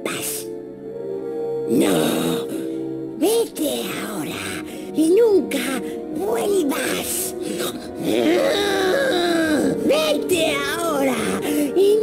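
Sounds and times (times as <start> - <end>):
orchestral film score: 0.0 - 12.0
creature wailing voice: 8.0 - 9.9.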